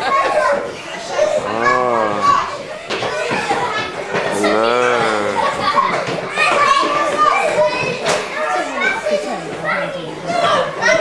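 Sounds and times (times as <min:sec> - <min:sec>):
children chattering and calling: 0:00.0 - 0:11.0.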